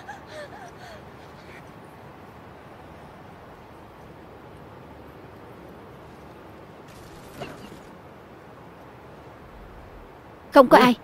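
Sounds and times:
woman gasping breathlessly: 0.0s - 1.7s
steady background hiss: 0.0s - 11.0s.

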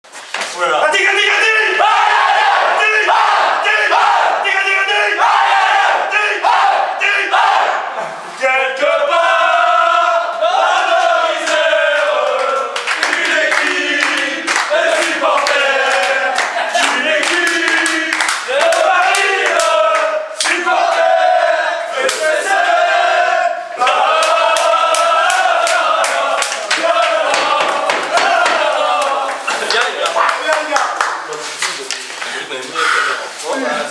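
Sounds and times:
men shouting and chanting: 0.6s - 30.8s
rhythmic hand clapping: 11.4s - 21.1s, 22.0s - 22.4s, 23.8s - 32.2s.

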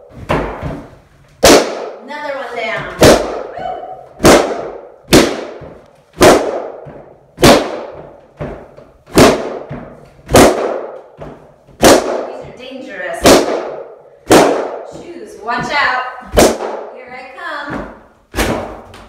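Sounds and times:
balloons bursting: 0.0s - 19.0s.

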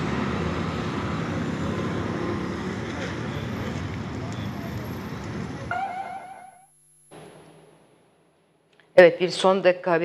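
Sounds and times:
road traffic noise: 0.0s - 7.4s
brief wavering tone: 5.7s - 6.7s.

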